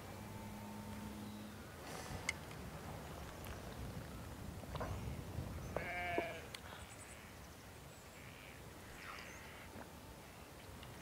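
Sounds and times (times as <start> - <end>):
wind on microphone: 1.8 - 6.9
sheep bleating: 5.8 - 6.5.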